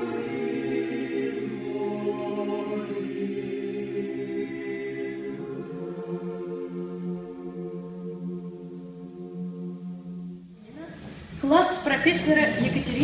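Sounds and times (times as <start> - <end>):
choir singing a cappella: 0.0 - 10.6.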